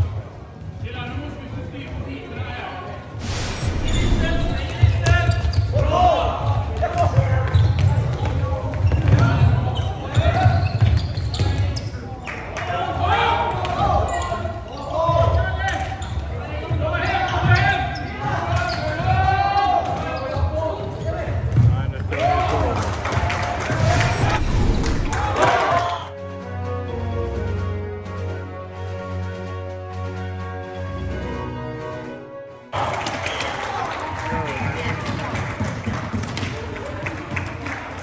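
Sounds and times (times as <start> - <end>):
players shouting in a sports hall: 12.9 - 21.2.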